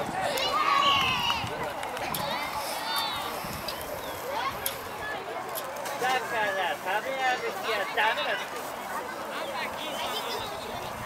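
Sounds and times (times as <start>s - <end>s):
children shouting: 0.0s - 3.4s.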